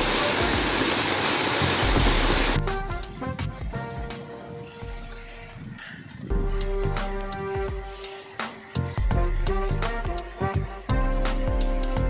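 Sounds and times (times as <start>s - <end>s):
news music with deep bass: 1.8s - 12.0s.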